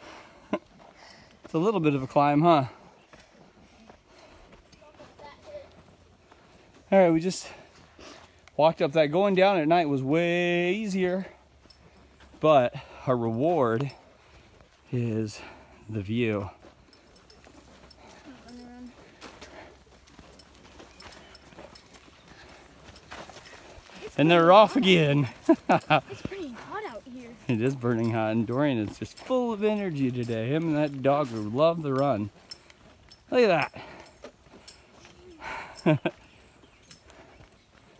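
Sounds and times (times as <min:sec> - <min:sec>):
footsteps on dirt trail: 0:00.0 - 0:37.9.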